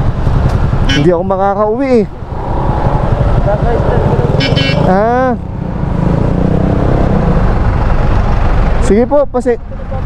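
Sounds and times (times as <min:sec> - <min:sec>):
motorcycle engines idling: 0:00.0 - 0:05.6.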